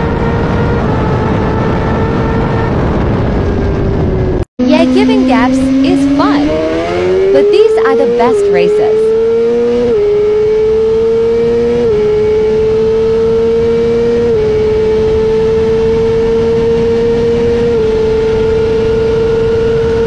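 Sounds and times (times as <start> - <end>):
wind noise: 0.0 - 7.1
motorcycle engine revving high: 0.0 - 20.0.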